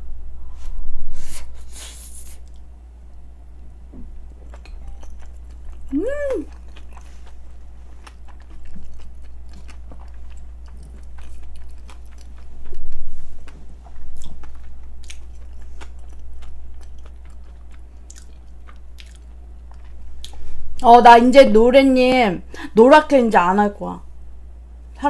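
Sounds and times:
close chewing of rice: 0:04.2 - 0:20.4
person humming mm: 0:05.9 - 0:06.6.

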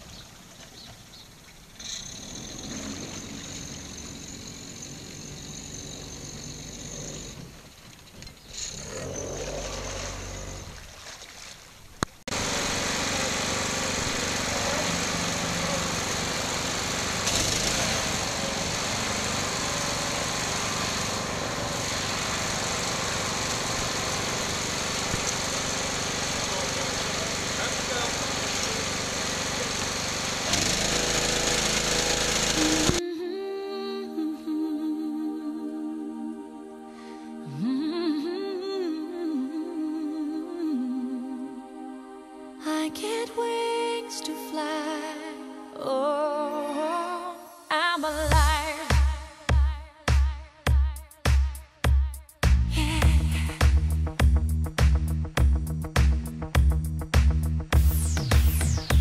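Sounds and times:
small boat engine running: 0:00.0 - 0:08.0, 0:09.0 - 0:11.6, 0:12.3 - 0:33.0
crane engine running loudly: 0:02.0 - 0:07.6, 0:12.3 - 0:33.0
water moving around hull: 0:09.6 - 0:12.2.

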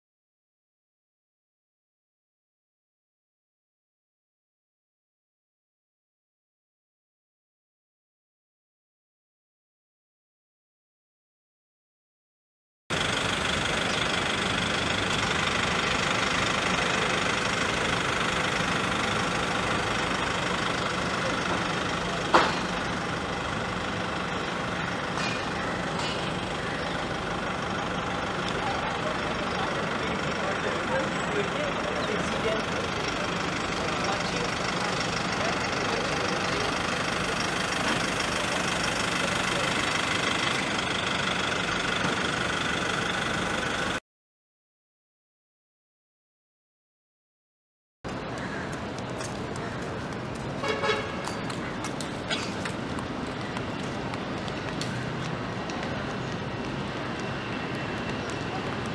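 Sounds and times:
outdoor background noise: 0:12.9 - 0:44.0, 0:48.1 - 0:58.9
steady mechanical hum: 0:48.1 - 0:58.9.

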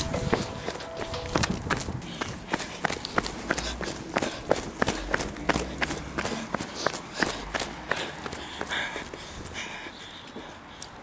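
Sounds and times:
footsteps running on pavement: 0:00.0 - 0:11.0.

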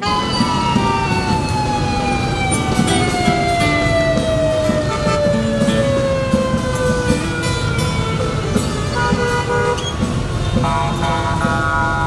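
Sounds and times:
siren winding down: 0:00.0 - 0:09.0
motorbike engines in traffic: 0:00.0 - 0:12.0.

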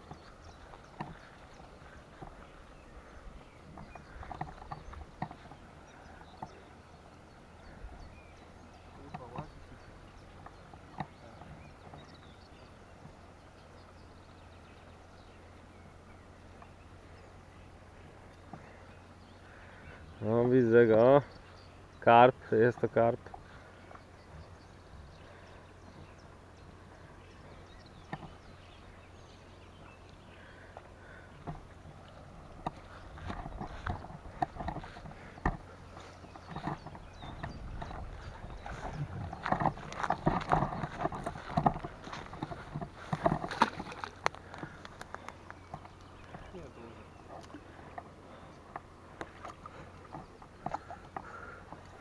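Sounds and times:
rustling on grassy bank: 0:23.3 - 0:52.0.

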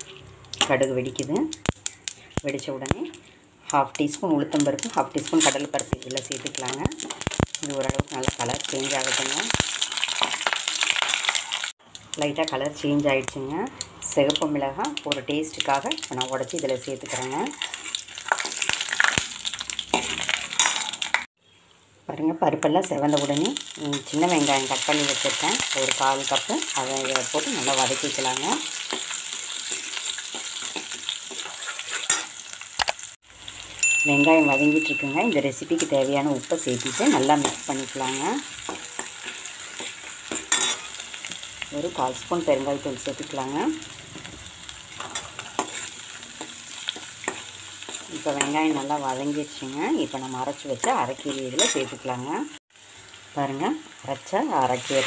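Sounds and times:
oil sizzling in a pot: 0:00.0 - 0:21.9, 0:22.5 - 0:55.0
ladle stirring in pan: 0:27.8 - 0:32.4, 0:38.5 - 0:41.4, 0:44.9 - 0:48.7.

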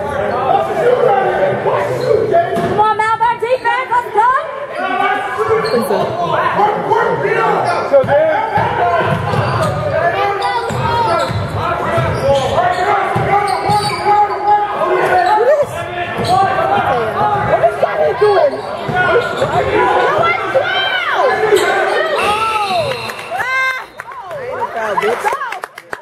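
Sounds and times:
echoing voices and chatter: 0:00.0 - 0:26.0.

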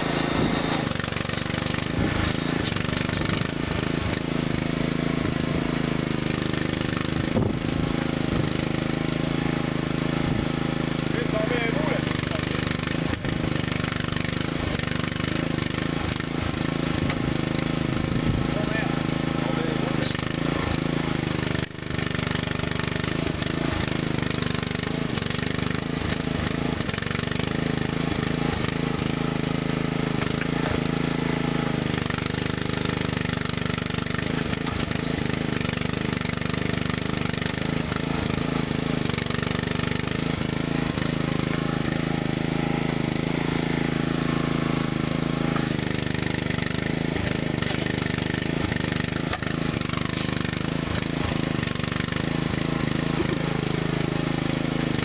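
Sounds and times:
mini excavator engine running: 0:00.0 - 0:55.0.

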